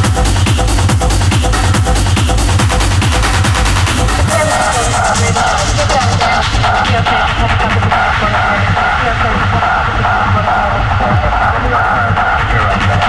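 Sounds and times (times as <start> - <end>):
driving kick drum: 0.0 - 13.0
hard techno track: 0.0 - 13.0
hi-hats: 0.0 - 13.0.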